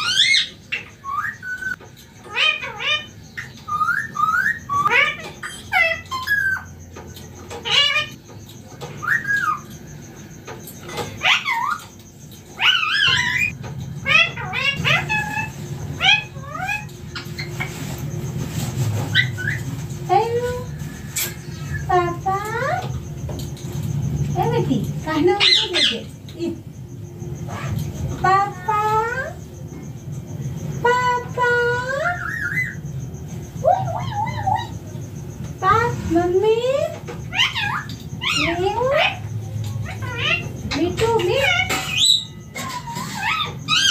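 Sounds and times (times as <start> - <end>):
parakeet calls: 0.0 - 43.9
steady low hum: 0.0 - 43.9.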